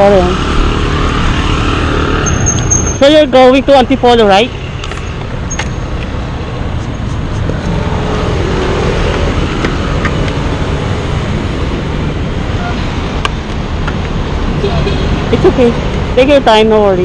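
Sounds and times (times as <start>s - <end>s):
road traffic rumble: 0.0s - 17.0s.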